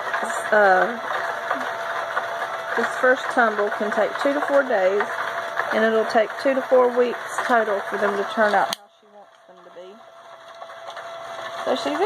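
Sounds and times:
rocks rolling in tumbler barrel: 0.0 - 8.7, 9.3 - 12.0.

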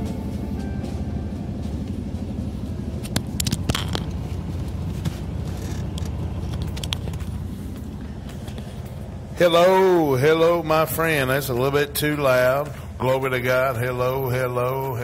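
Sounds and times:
low rumble: 0.0 - 15.0.

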